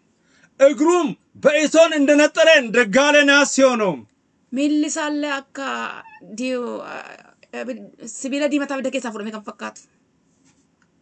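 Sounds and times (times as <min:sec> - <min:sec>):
person speaking: 0:00.6 - 0:04.0.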